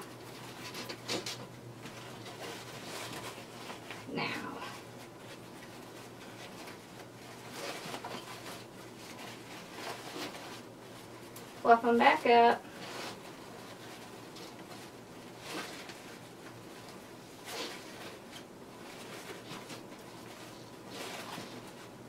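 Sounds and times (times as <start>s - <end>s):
faint steady hum: 0.0s - 22.0s
ribbon rustling and crinkling: 0.0s - 22.0s.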